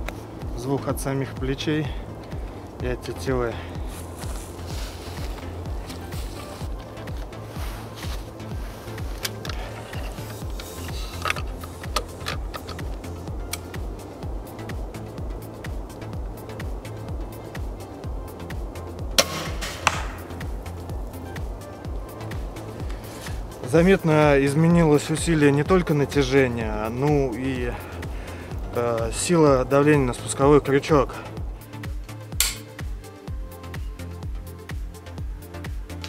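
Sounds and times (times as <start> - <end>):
background music with steady beat: 0.0 - 36.0
crossbow shot crack: 19.1 - 20.6, 32.4 - 32.8.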